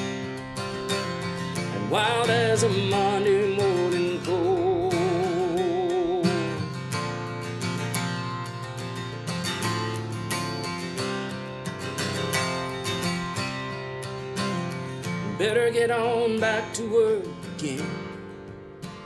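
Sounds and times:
acoustic guitar strumming: 0:00.0 - 0:19.0
man singing with vibrato: 0:01.5 - 0:06.8, 0:15.2 - 0:18.2.

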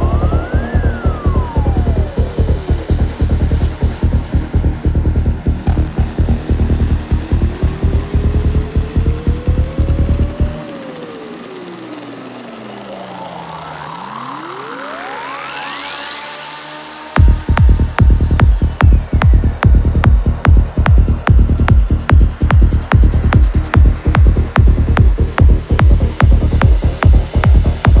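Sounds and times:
rolling bassline: 0:00.0 - 0:10.6, 0:17.2 - 0:28.0
gliding synth line: 0:00.0 - 0:28.0
synth sweep: 0:00.0 - 0:28.0
kick drum: 0:05.6 - 0:06.4, 0:17.2 - 0:28.0.

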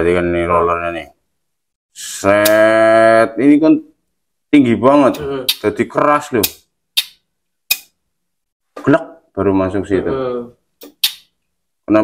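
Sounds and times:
sharp metallic clicks: 0:06.4 - 0:07.9.

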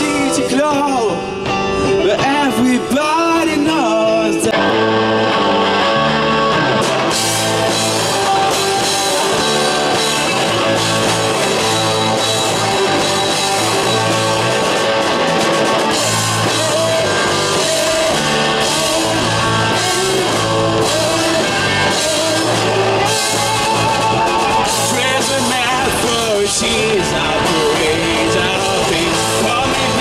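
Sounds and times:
rock band playing: 0:00.0 - 0:30.0.

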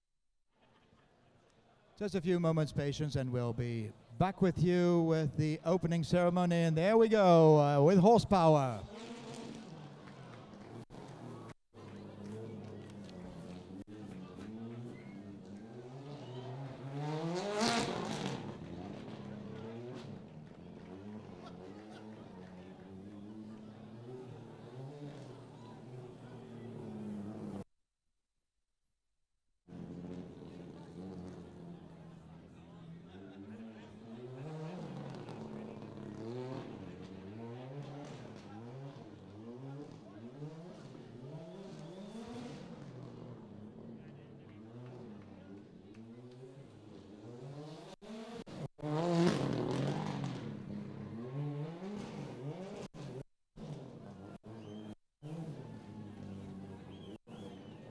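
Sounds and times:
rally car engine revving: 0:08.8 - 0:27.6, 0:29.7 - 0:57.9.

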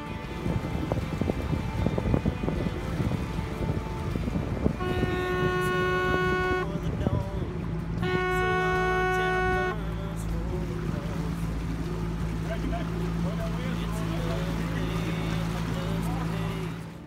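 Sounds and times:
hunting horn blasts: 0:00.0 - 0:11.2.

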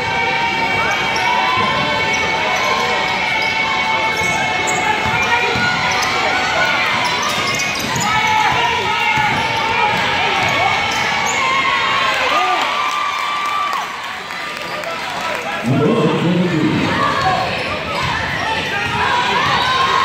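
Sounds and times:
people talking and calling out: 0:00.0 - 0:12.7, 0:14.2 - 0:20.0
sneakers squeaking: 0:00.7 - 0:11.8, 0:16.8 - 0:20.0.

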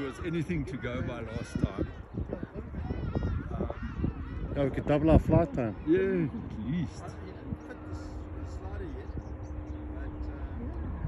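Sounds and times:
faint gliding calls: 0:00.0 - 0:11.0
wind rumbling on microphone: 0:00.0 - 0:11.0
thin steady hum: 0:00.2 - 0:11.0.

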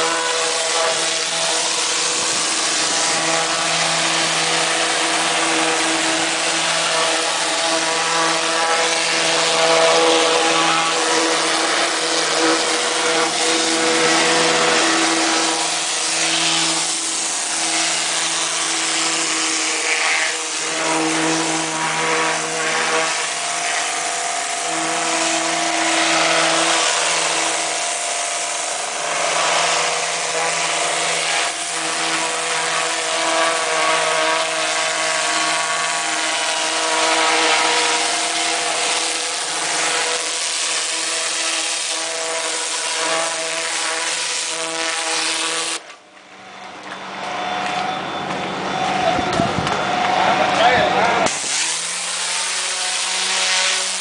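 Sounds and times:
water jet hissing: 0:00.0 - 0:45.8, 0:51.3 - 0:54.0
pressure washer motor hum: 0:00.0 - 0:54.0.

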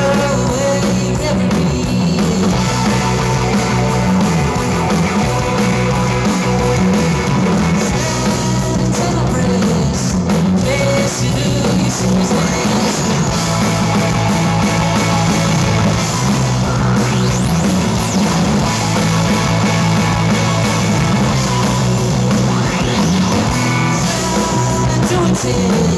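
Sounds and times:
heavy bass line: 0:00.0 - 0:25.9
live rock band playing: 0:00.0 - 0:25.9.

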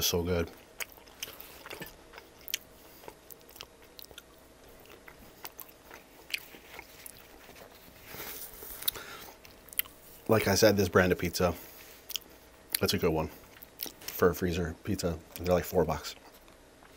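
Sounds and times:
chewing crunches: 0:00.5 - 0:10.0, 0:12.0 - 0:14.2.

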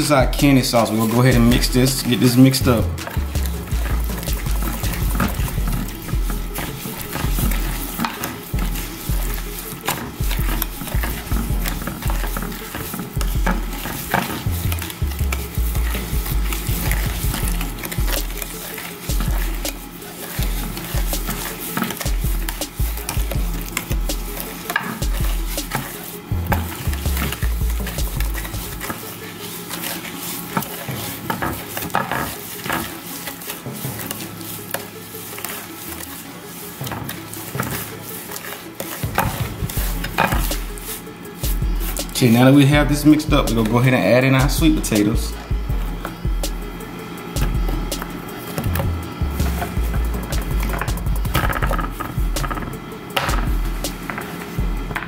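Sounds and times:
background music bass: 0:00.0 - 0:29.5, 0:39.0 - 0:55.0
wooden spatula scraping glass dish: 0:02.0 - 0:42.6.

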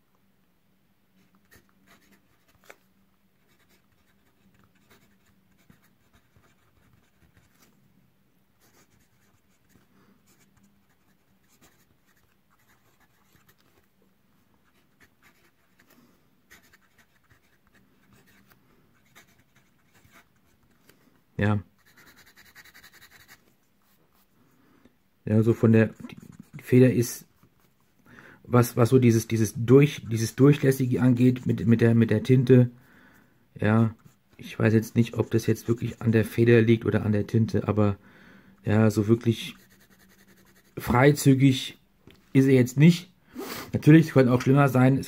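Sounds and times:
pen nib scratching on paper: 0:03.4 - 0:07.7, 0:08.6 - 0:13.8, 0:14.6 - 0:20.7, 0:21.8 - 0:23.4, 0:39.5 - 0:40.8
pen scribbling: 0:03.4 - 0:07.7, 0:14.7 - 0:20.6, 0:21.8 - 0:23.4, 0:39.6 - 0:40.8.

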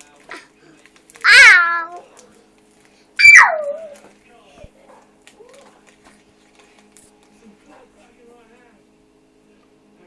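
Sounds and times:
cat meowing loudly: 0:01.2 - 0:02.0, 0:03.2 - 0:03.7.

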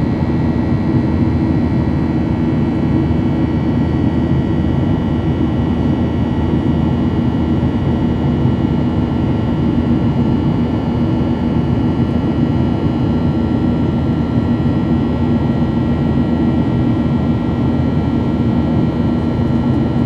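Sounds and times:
jet engines in cabin: 0:00.0 - 0:20.0.

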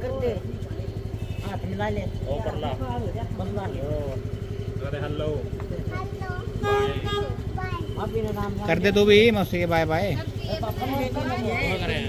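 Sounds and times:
motor scooter engine idling: 0:00.0 - 0:12.0
voices talking: 0:00.0 - 0:12.0.

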